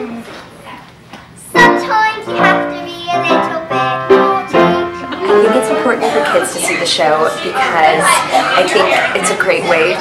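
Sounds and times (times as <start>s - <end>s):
girl singing a show tune: 1.4s - 9.4s
instrumental accompaniment: 1.5s - 9.1s.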